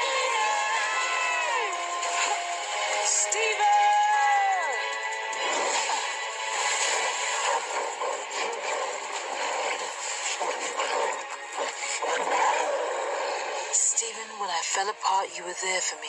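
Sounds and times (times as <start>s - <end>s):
dramatic action effects: 0.0s - 15.2s
cartoon soundtrack music: 0.0s - 16.0s.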